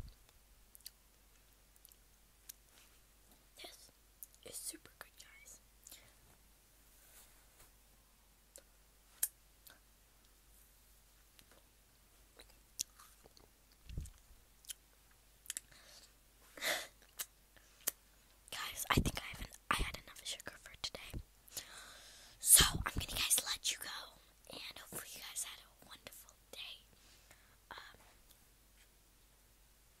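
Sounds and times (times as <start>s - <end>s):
girl whispering: 3.5s - 6.2s, 18.5s - 21.2s, 22.4s - 26.9s, 27.7s - 28.1s.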